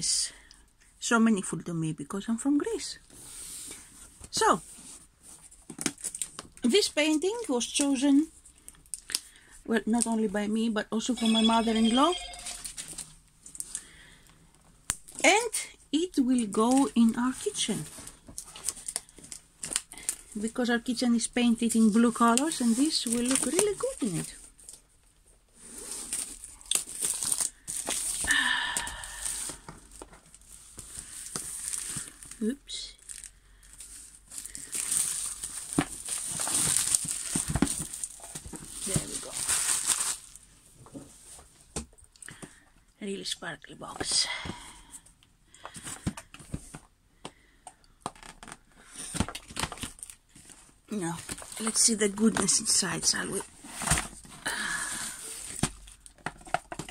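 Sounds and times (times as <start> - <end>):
packaging crinkling and tearing: 5.6 - 7.8, 18.0 - 20.3, 25.8 - 28.3, 29.0 - 40.4, 48.0 - 52.8.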